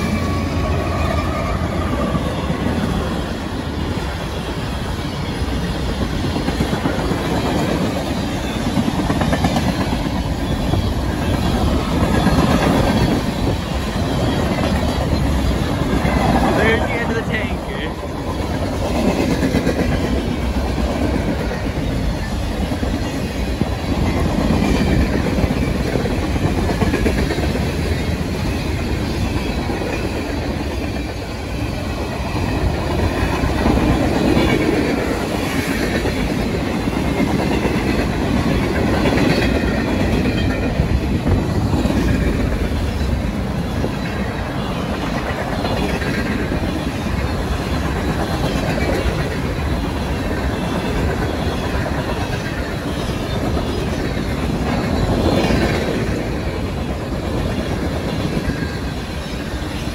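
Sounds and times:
clickety-clack over rail joints: 0.0 - 59.9
train wheels rumbling: 0.0 - 59.9.

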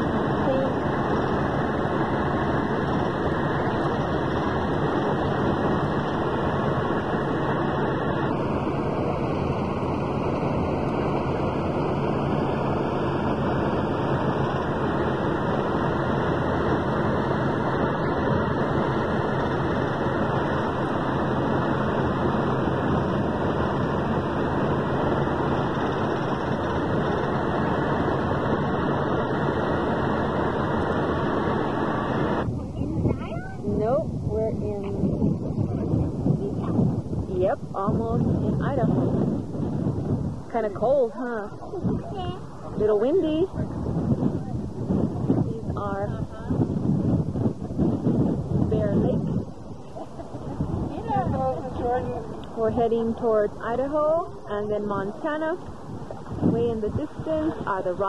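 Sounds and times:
road and engine noise inside vehicle: 0.0 - 58.0
wind outdoors: 0.0 - 58.0
person speaking outdoors: 40.5 - 43.8, 48.7 - 58.0.

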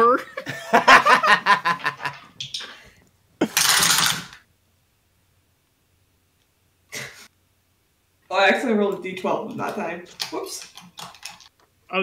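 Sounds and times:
people laughing: 0.4 - 2.2
dice rattling on a table: 10.1 - 11.5.

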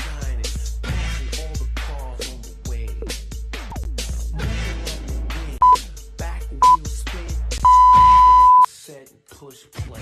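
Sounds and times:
hip-hop music: 0.0 - 10.0
interval timer beeping: 7.6 - 8.7.

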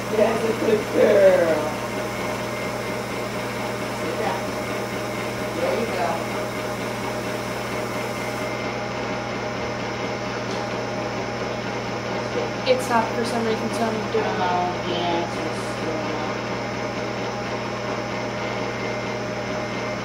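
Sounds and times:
faint voices: 0.0 - 1.9
treadmill motor and pump hum: 0.0 - 20.0.

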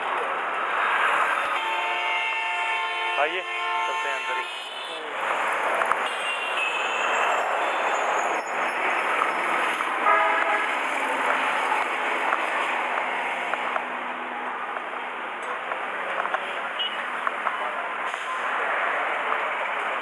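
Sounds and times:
roadside traffic noise: 0.0 - 20.0
vehicle horn: 1.5 - 5.1, 6.0 - 7.8, 10.0 - 10.8.

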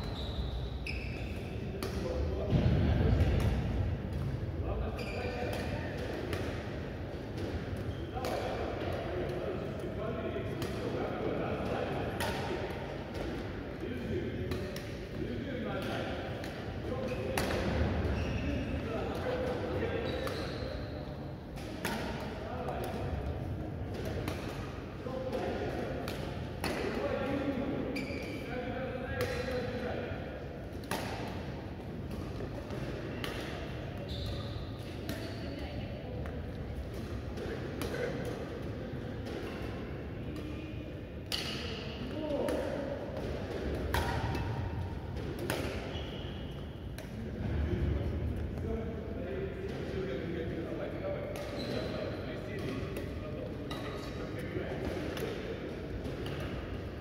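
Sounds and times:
voices in a large hall: 0.0 - 57.0
rackets striking shuttlecocks: 12.2 - 13.5, 21.5 - 23.2, 23.9 - 27.0, 41.2 - 45.9.

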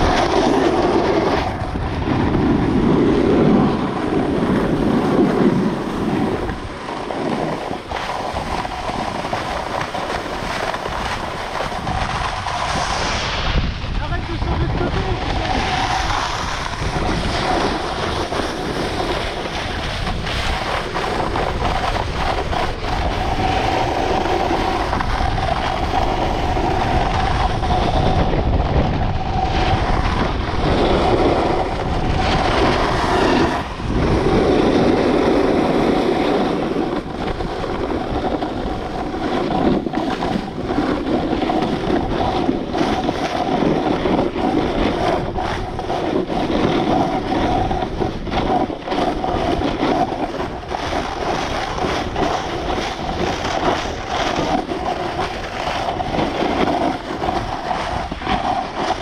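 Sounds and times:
skis scraping over snow: 0.0 - 59.0
wind on microphone: 0.0 - 59.0.

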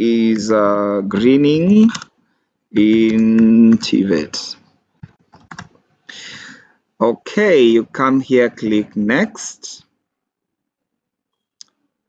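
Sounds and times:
computer keyboard typing: 1.8 - 2.1, 2.8 - 4.2, 5.0 - 5.8.

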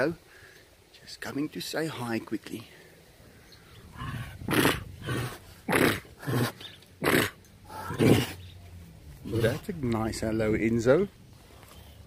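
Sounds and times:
tiger chuffing: 3.8 - 8.5.

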